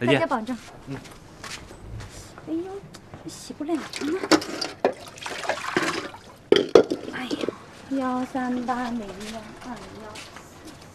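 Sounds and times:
tap water splashing into basin: 3.8s - 7.1s.

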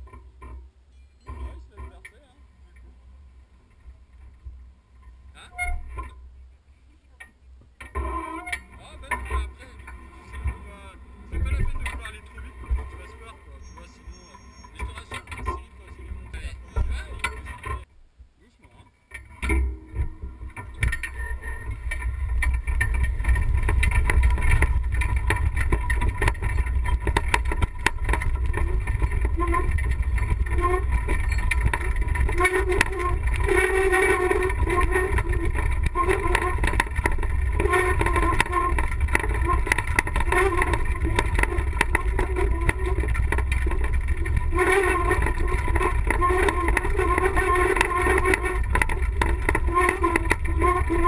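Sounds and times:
wheelchair rolling on gravel: 8.0s - 17.9s, 20.0s - 51.0s
frame knocking and rattling: 19.2s - 51.0s.

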